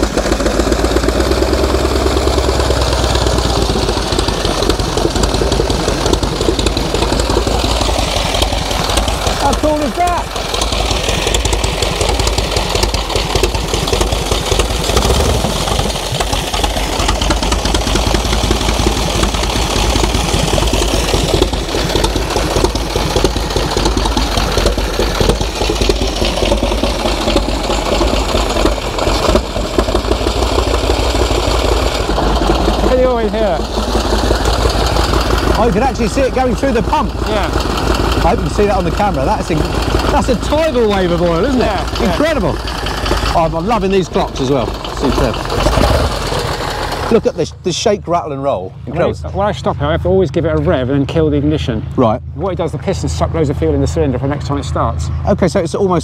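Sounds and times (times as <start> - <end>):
motorcycle engine idling: 0.0 - 47.8.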